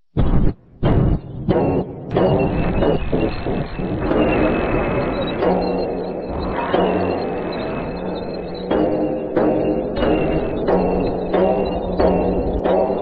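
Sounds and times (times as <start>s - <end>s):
dense sound effects: 0.2s - 13.0s
low droning film score: 0.2s - 13.0s.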